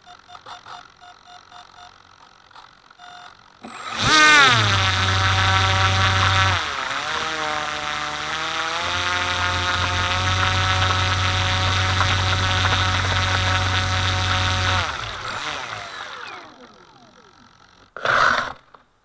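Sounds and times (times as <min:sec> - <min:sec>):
faint beeps: 0:00.0 - 0:02.1
model electric motor whine: 0:03.6 - 0:18.0.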